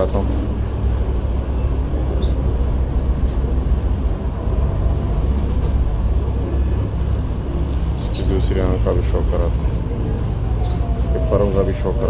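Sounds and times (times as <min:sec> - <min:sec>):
low background rumble: 0:00.0 - 0:12.0.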